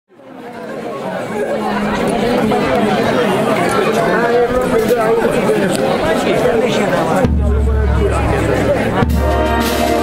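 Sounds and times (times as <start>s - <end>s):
crowd talking: 0.1s - 10.0s.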